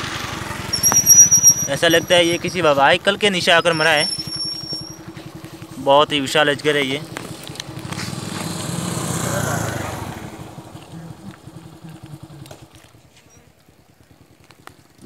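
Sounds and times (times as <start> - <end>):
motorcycle passing: 0.0 - 15.0.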